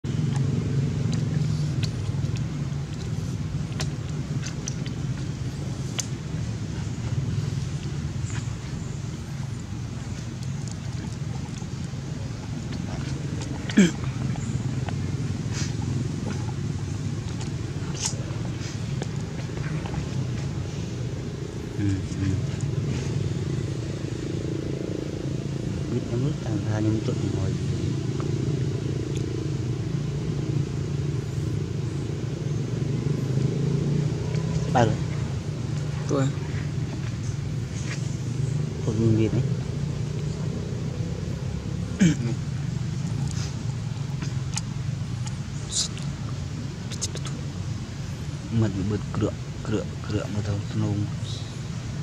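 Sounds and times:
low engine rumble: 0.0s - 52.0s.

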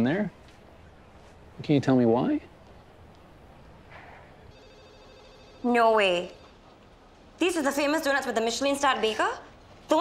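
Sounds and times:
faint telephone ringing: 4.4s - 8.6s.

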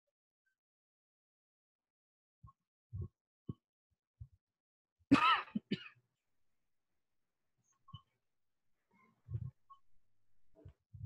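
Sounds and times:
person clearing throat: 5.1s - 5.9s
person coughing: 5.1s - 6.0s.

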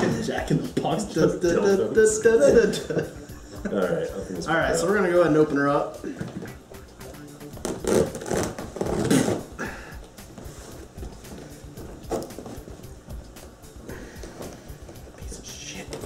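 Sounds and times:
music: 0.0s - 16.0s.

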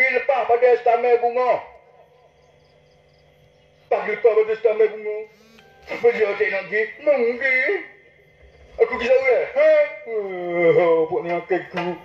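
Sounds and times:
faint steady hum: 0.0s - 12.0s
man's voice: 3.9s - 5.3s, 5.9s - 7.9s, 8.8s - 12.0s.

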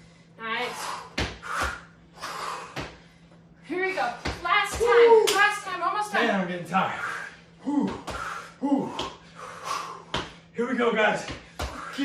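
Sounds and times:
hard breathing: 0.0s - 4.2s, 6.8s - 10.5s, 11.4s - 12.0s
sneakers landing on tile: 10.1s - 10.4s, 11.2s - 11.9s.

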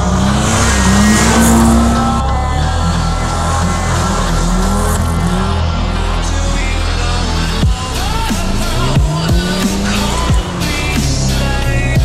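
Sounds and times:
background music: 0.0s - 12.0s
car engine revving: 0.0s - 12.0s.

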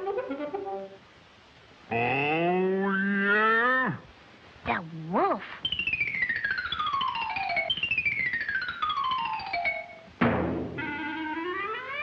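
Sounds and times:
quick rise-and-fall tone: 10.2s - 12.0s.

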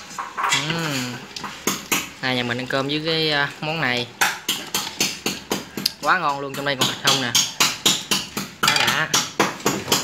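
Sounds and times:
rapid sharp ringing knocks: 4.2s - 10.0s.

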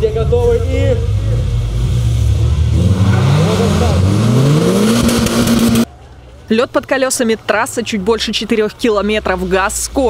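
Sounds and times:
race car engine revving: 0.0s - 5.9s.

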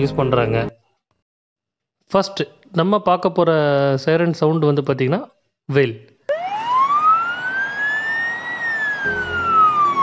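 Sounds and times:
ambulance siren wailing: 6.3s - 10.0s.

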